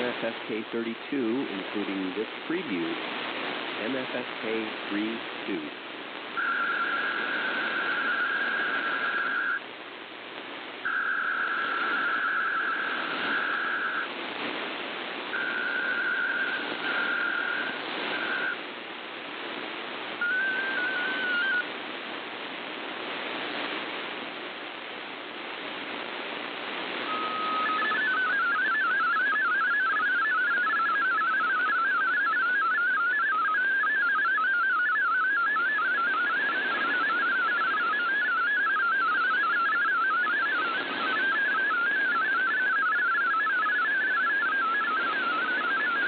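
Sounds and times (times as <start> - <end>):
radio static hiss: 0.0 - 46.0
data burst: 6.4 - 9.6, 15.4 - 18.6, 27.0 - 46.0
digital data tones: 6.4 - 9.6, 15.4 - 18.6, 20.2 - 21.6, 27.1 - 46.0.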